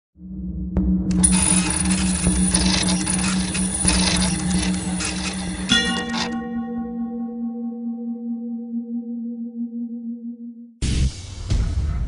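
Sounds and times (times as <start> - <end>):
held chord: 4.4 - 10.7.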